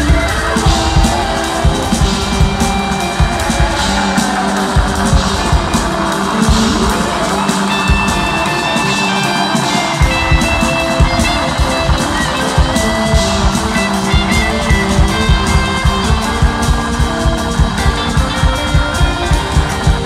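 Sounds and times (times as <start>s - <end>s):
faint crowd noise: 0.0s - 20.0s
live rock band playing: 0.0s - 20.0s.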